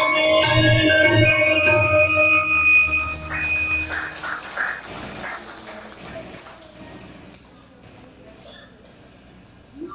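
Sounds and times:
electronic organ music: 0:00.0 - 0:04.8
audience clapping: 0:02.8 - 0:07.6.

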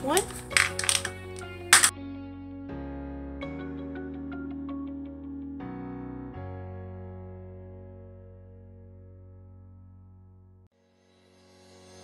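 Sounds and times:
small charms clinking: 0:00.0 - 0:01.9
soft background music: 0:00.0 - 0:08.4.

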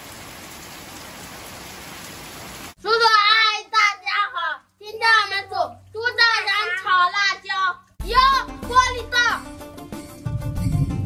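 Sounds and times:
steady rain hiss: 0:00.0 - 0:07.2
child speaking: 0:02.8 - 0:09.5.

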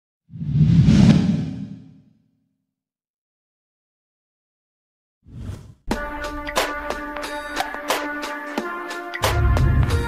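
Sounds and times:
whoosh with deep rumble: 0:00.3 - 0:02.0.

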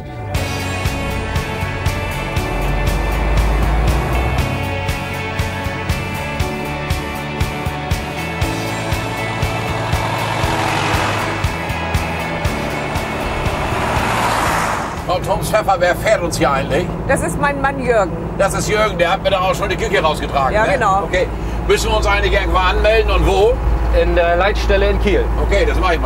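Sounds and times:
background music with steady beat: 0:00.0 - 0:14.5
fire engine rumbling: 0:00.0 - 0:26.0
rushing vehicle noise: 0:00.0 - 0:26.0.

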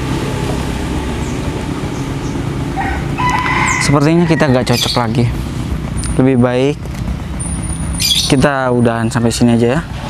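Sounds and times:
animal call with stepped notes: 0:01.3 - 0:05.1.

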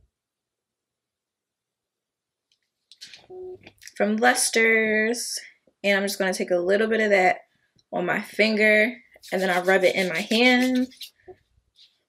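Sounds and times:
woman speaking: 0:03.3 - 0:07.4, 0:08.0 - 0:11.2.

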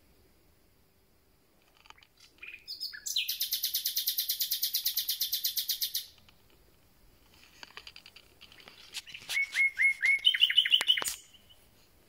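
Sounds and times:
nightingale singing: 0:02.0 - 0:06.3, 0:08.5 - 0:11.8.

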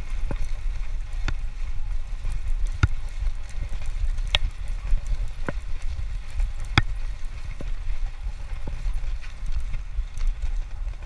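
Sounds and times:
bike clicks: 0:00.0 - 0:11.0
bike tyre rumble on concrete: 0:00.0 - 0:11.0
wind buffeting microphone: 0:00.0 - 0:11.0.

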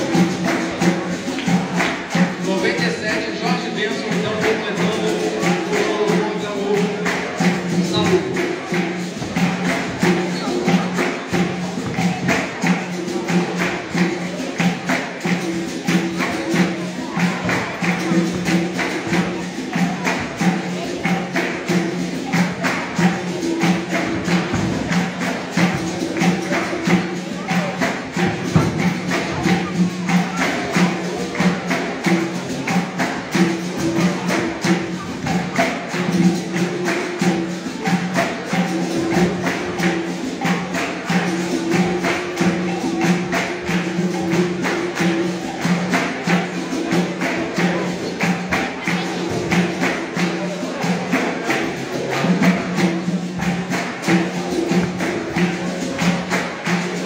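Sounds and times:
hand drum beat: 0:00.0 - 0:57.0
pandeiro jingle: 0:00.0 - 0:57.0.

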